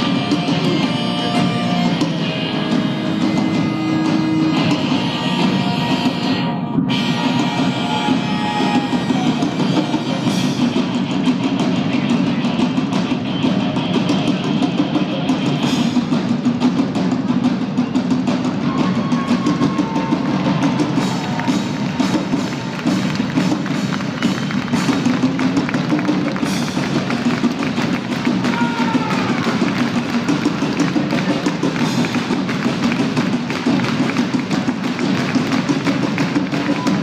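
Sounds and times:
bagpipes: 0.0 - 16.2, 18.3 - 37.0
drum kit steady beat: 0.0 - 37.0.

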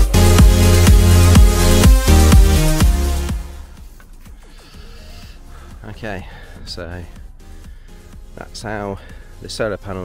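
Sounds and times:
electronic music: 0.0 - 8.8.

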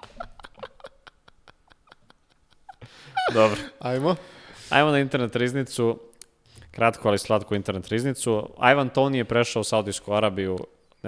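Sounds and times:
men laughing breathily: 0.0 - 4.7.

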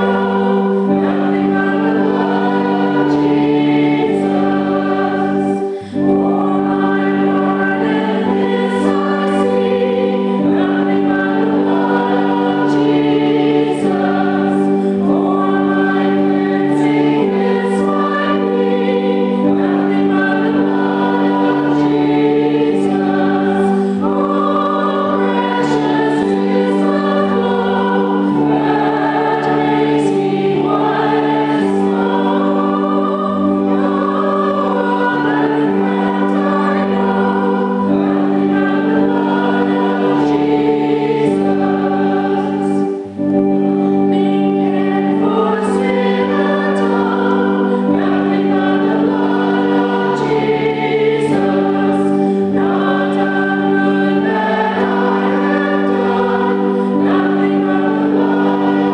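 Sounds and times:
sustained accompaniment chords: 0.0 - 58.9
woman singing a hymn: 0.0 - 58.9.

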